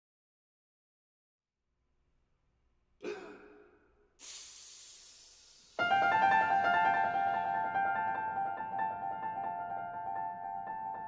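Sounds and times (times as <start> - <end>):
person breathing: 4.2 - 5.8.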